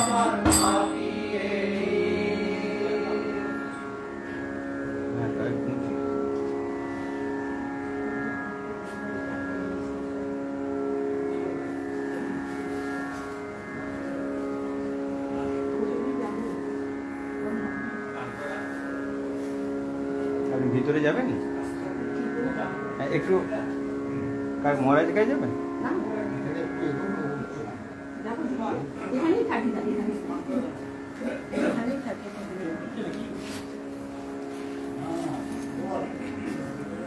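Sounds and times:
steady musical drone: 0.0 - 37.0
faint voices murmuring: 1.8 - 37.0.

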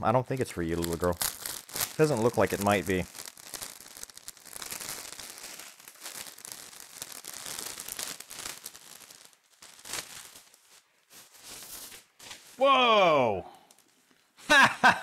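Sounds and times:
plastic wrapping crinkling and tearing: 0.3 - 12.6, 13.5 - 14.4.

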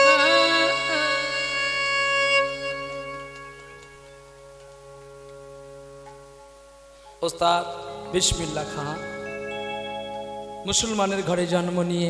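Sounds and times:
held instrumental chord: 0.0 - 12.0.

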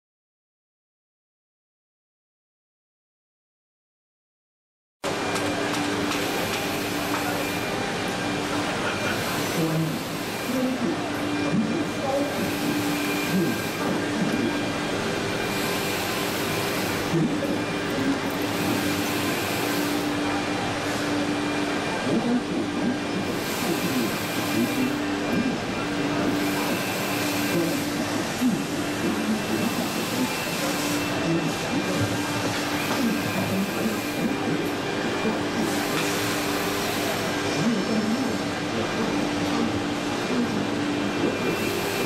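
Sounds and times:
faint voices: 5.7 - 42.0.

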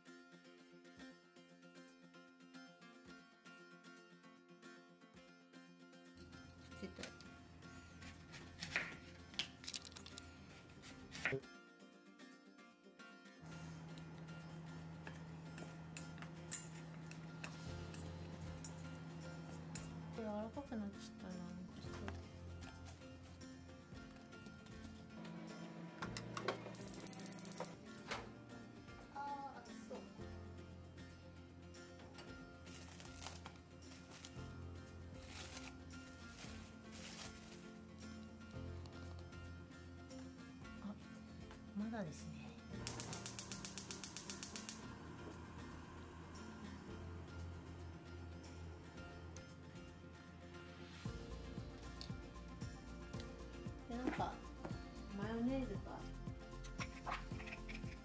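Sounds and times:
chopsticks clicking against steel bowl: 42.8 - 44.8.

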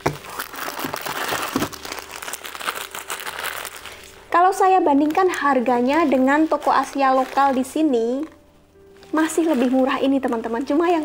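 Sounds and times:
plastic packets crinkling: 0.0 - 11.0
sharp plastic crackle: 0.0 - 11.0.

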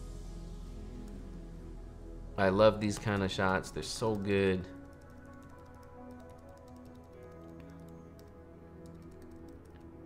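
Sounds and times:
faint background music: 0.0 - 10.0
computer keyboard keys tapping: 4.0 - 9.9.

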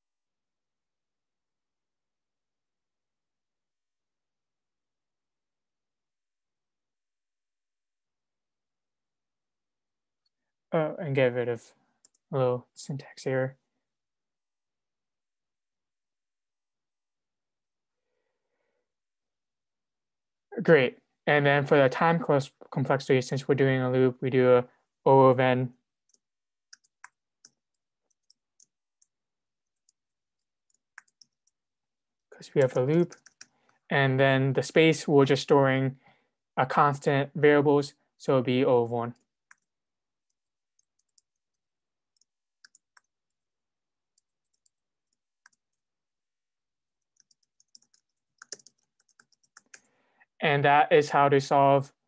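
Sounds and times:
computer keyboard typing: 26.0 - 31.6, 32.5 - 33.6, 39.2 - 43.4, 44.1 - 45.8, 47.0 - 49.9.

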